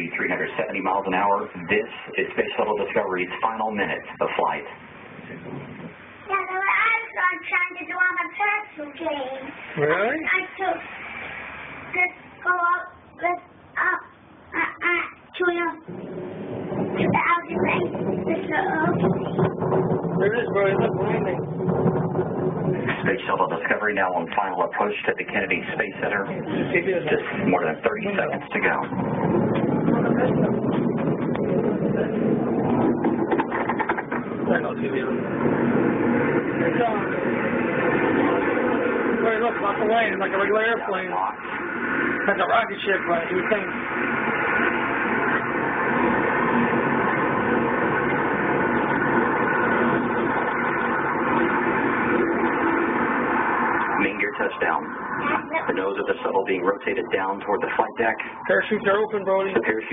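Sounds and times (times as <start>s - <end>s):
indistinct voices talking: 0.0s - 59.9s
steady background din: 0.0s - 59.9s
child talking: 6.2s - 9.6s, 10.2s - 10.8s, 11.9s - 15.9s, 17.0s - 19.1s, 55.2s - 55.9s.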